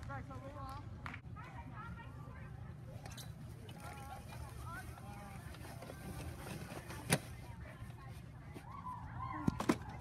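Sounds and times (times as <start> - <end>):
faint voices speaking: 0.0 - 10.0.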